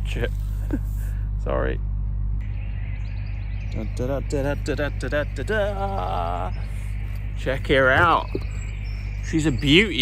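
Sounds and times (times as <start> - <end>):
low drone of building sites: 0.0 - 10.0
person singing wavering notes: 2.4 - 10.0.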